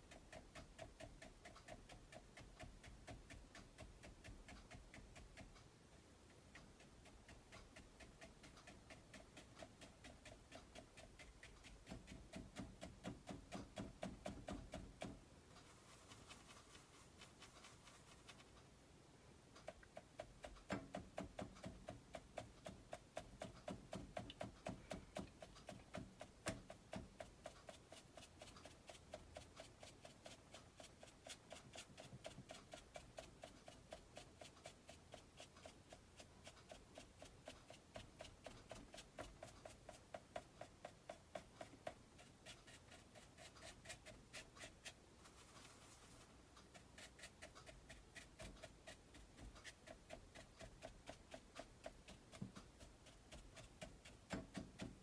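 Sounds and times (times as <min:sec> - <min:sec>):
brush tapping on canvas: 0:00.0 - 0:05.7, 0:06.3 - 0:18.7, 0:19.6 - 0:55.0.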